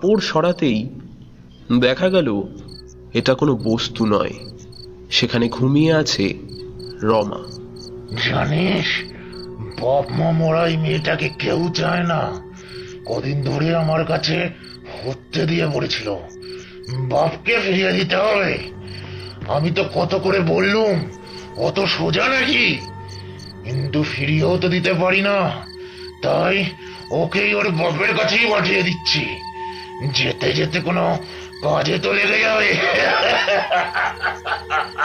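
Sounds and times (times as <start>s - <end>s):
crickets chirping: 0.0s - 35.0s
person speaking: 1.7s - 12.4s, 13.0s - 16.3s, 16.9s - 22.9s.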